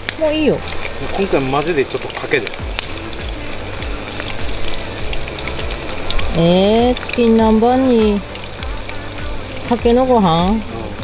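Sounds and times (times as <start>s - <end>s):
background music: 0.0s - 11.0s
chicken deep-frying in oil: 0.0s - 11.0s.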